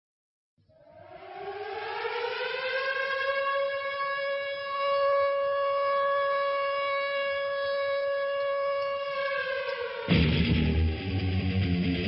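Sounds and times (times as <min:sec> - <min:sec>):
siren-like tone gliding upward: 0:00.7 - 0:12.0.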